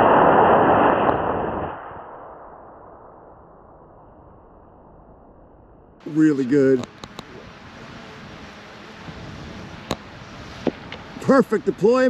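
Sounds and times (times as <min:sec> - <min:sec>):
small sharp clicks: 0:06.8 - 0:07.3, 0:09.8 - 0:10.0
wind on microphone: 0:06.8 - 0:11.3.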